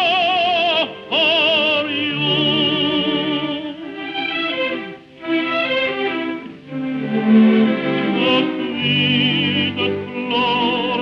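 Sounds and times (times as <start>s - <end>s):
orchestral strings melody: 0.0s - 11.0s.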